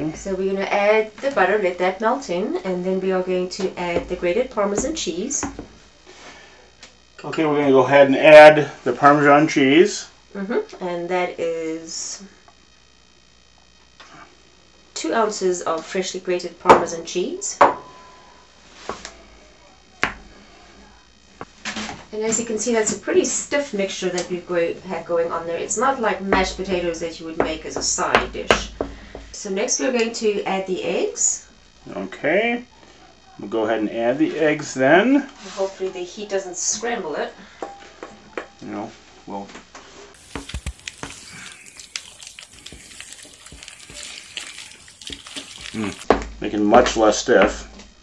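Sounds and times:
stirring mashed potato: 0:40.2 - 0:46.1.

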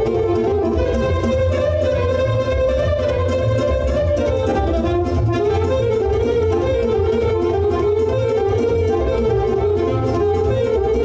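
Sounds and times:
keyboard accompaniment with bass and beat: 0:00.0 - 0:11.0
saxophone melody: 0:00.0 - 0:11.0.

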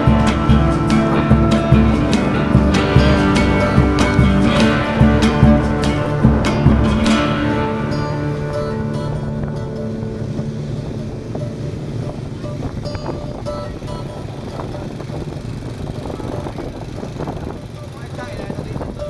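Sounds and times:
guitar music: 0:00.0 - 0:16.4
motorbike engine hum: 0:00.0 - 0:19.0
street traffic noise: 0:00.0 - 0:19.0
wind on microphone: 0:00.0 - 0:19.0.

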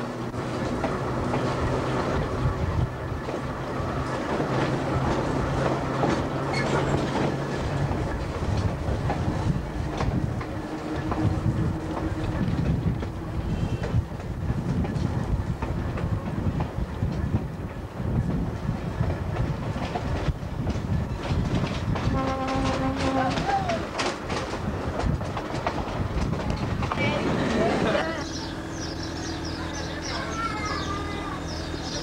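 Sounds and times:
railcar rumble: 0:00.0 - 0:32.0
wheels clacking over rail joints: 0:00.0 - 0:32.0
train horn: 0:13.4 - 0:14.0, 0:22.0 - 0:23.8.

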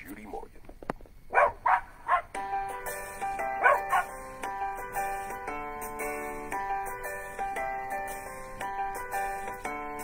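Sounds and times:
dog barking: 0:01.3 - 0:02.4, 0:03.5 - 0:04.2.

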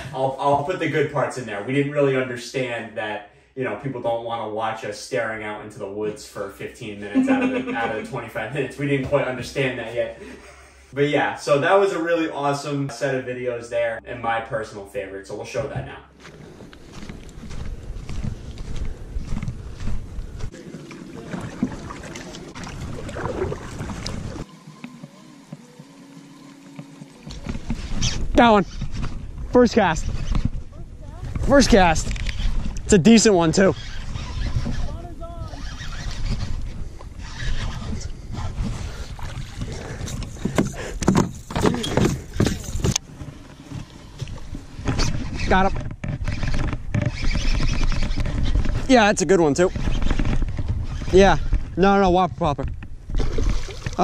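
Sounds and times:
footsteps on pine needles: 0:16.2 - 0:20.6
rumbling wind on microphone: 0:16.4 - 0:24.5, 0:27.3 - 0:32.9, 0:33.7 - 0:41.4, 0:44.1 - 0:54.0
water sloshing from paddle strokes: 0:19.8 - 0:30.6, 0:35.6 - 0:48.9, 0:53.0 - 0:54.0
fishing reel reeling: 0:27.3 - 0:29.2, 0:31.9 - 0:39.0, 0:44.8 - 0:51.6.

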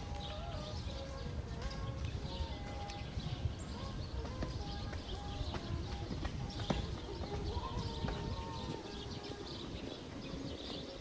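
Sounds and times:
footsteps on stone paving: 0:00.0 - 0:11.0
wind rumbling on microphone: 0:00.0 - 0:11.0.

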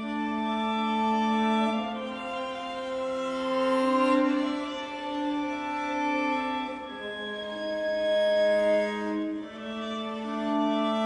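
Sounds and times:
violas bowing sustained notes: 0:00.0 - 0:11.0.

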